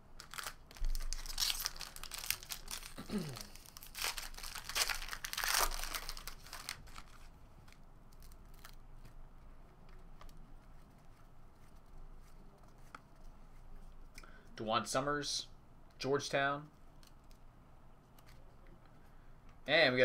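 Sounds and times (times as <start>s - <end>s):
foil pack tearing and crinkling: 0.2s - 7.2s
cards being handled: 0.2s - 14.2s, 18.1s - 18.8s.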